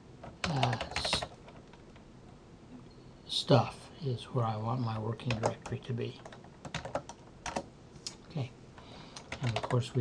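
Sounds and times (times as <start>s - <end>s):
computer keyboard keystrokes: 0.2s - 1.8s, 5.2s - 7.7s, 9.2s - 10.0s.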